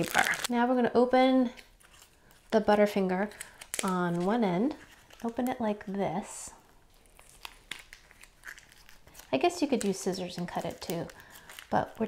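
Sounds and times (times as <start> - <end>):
plastic wrapper crinkling: 0.0 - 0.6, 1.5 - 6.0, 6.8 - 12.0.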